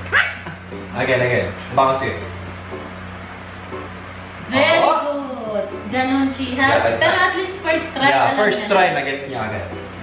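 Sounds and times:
background music with bass: 0.0 - 10.0.

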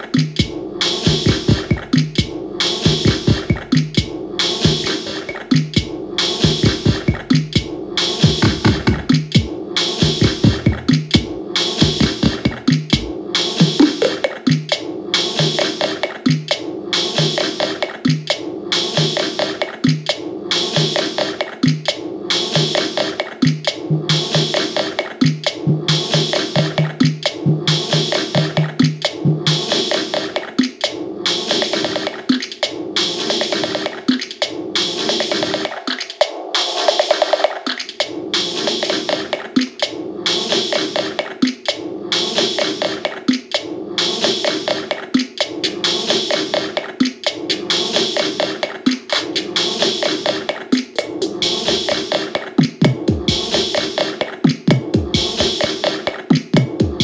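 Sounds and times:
sequenced electronic drum pattern: 0.0 - 57.0.

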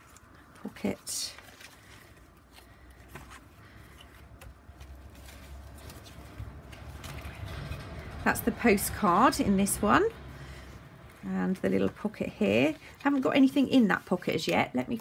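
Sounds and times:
pages of a journal turning: 0.0 - 9.8
faint handling sounds: 0.0 - 15.0
paper rustling: 0.0 - 15.0.

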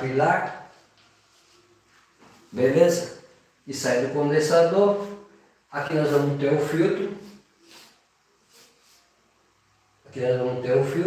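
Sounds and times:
chalk scraping on a blackboard: 7.0 - 9.2.

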